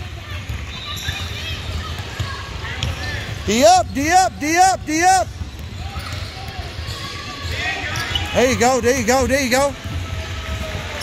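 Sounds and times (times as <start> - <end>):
chatter echoing in a gym: 0.0 - 11.0.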